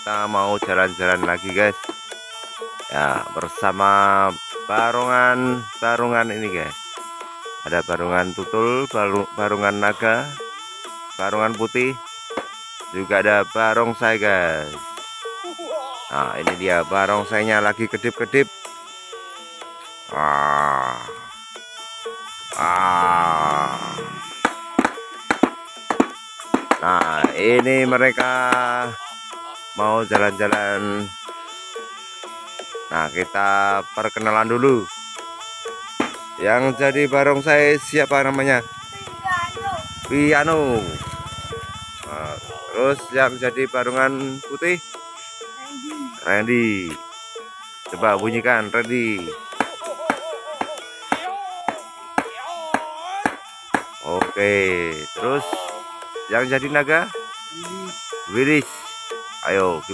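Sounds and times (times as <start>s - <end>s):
faint background music: 0.0s - 59.9s.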